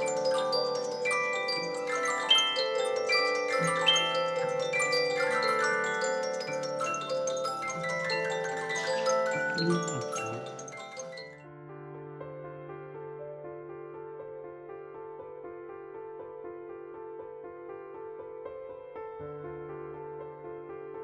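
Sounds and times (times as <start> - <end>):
music box melody: 0.0 - 11.4.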